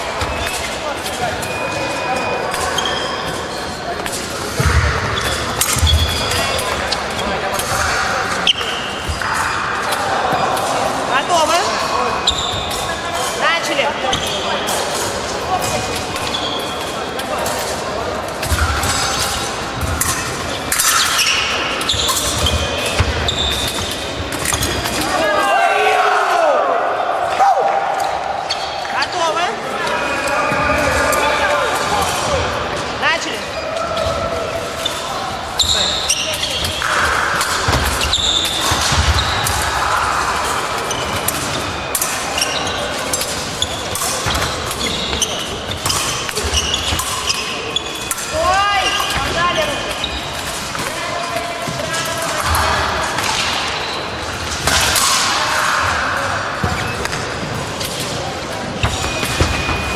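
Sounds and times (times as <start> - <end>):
voices and shouts: 25.0 - 37.4, 46.6 - 50.2.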